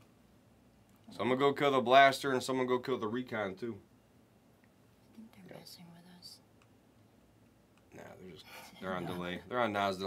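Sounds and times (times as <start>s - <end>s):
faint whispering: 5.0s - 6.4s.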